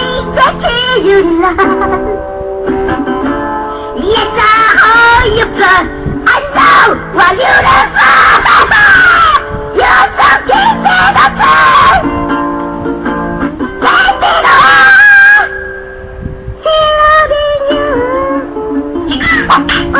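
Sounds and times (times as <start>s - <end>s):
strummed guitar: 0.0s - 8.8s, 9.4s - 19.9s.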